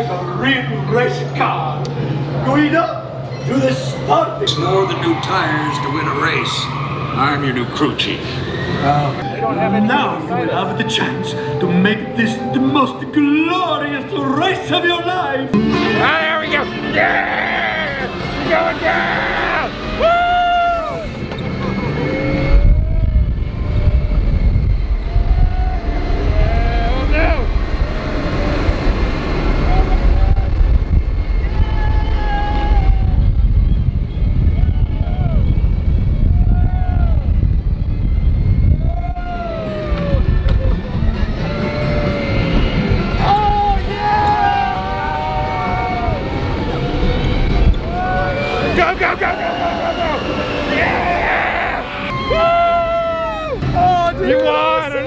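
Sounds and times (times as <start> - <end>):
riders whooping and shouting: 3.3 - 7.6, 16.0 - 55.0
wind on microphone: 21.2 - 48.8.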